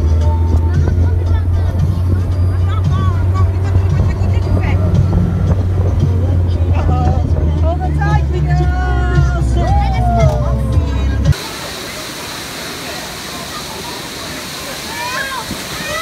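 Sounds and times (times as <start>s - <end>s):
wind on microphone: 0.0s - 8.1s
music: 0.0s - 11.4s
raised voices: 0.0s - 12.0s, 12.7s - 16.0s
vehicle rumble: 0.0s - 16.0s.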